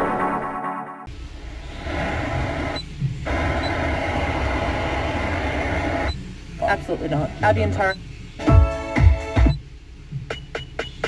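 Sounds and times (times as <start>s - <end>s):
radio static hiss: 1.1s - 10.4s.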